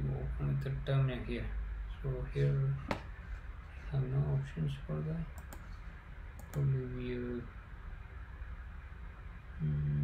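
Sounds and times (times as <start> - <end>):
computer mouse clicks: 5.3 - 5.8, 6.4 - 6.7.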